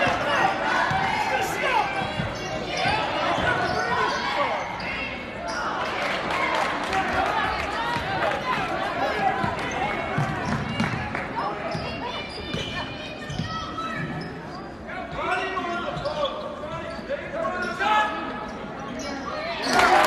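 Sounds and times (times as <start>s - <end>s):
voices echoing in hall: 0.0s - 20.0s.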